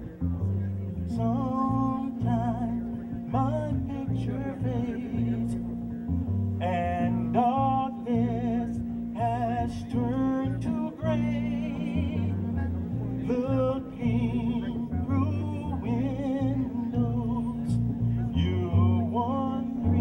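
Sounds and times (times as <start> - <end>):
keyboard: 0.0 - 20.0
upright bass: 0.0 - 20.0.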